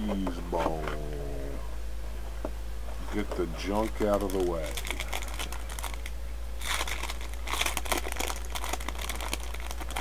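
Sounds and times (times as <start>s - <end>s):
steady low hum: 0.0s - 10.0s
cards rustling: 3.8s - 10.0s
wrapper crinkling: 3.8s - 10.0s.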